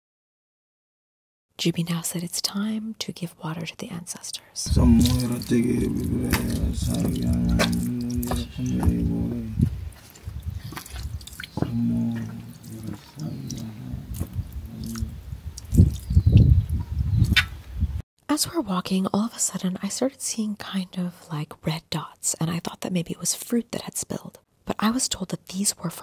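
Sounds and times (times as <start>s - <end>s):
man chanting: 4.7s - 9.8s, 11.6s - 15.2s
water dripping and splashing: 4.7s - 17.5s.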